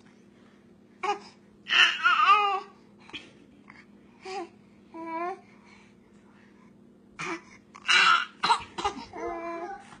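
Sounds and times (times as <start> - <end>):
baby whining: 1.0 - 2.8, 7.2 - 10.0.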